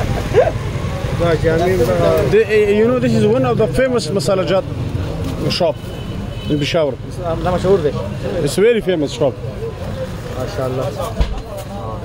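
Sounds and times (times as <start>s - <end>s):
people talking: 0.0s - 4.7s, 6.5s - 12.0s.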